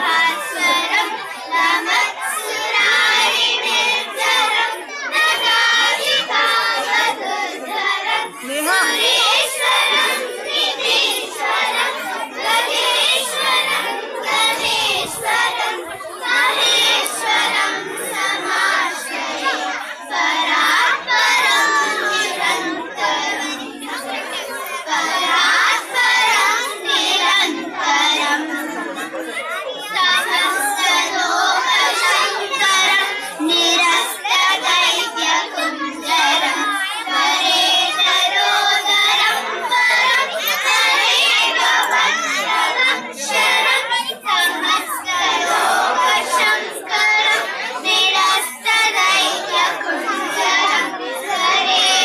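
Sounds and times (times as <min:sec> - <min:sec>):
children singing a hymn in unison: 0:00.0 - 0:52.0.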